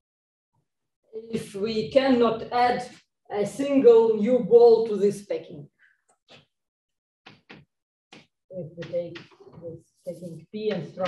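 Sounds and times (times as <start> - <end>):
chalk strokes on blackboard: 8.8 - 11.0.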